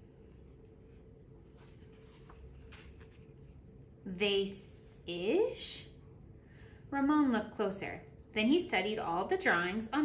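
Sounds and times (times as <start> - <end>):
book page turning: 1.4 - 3.6.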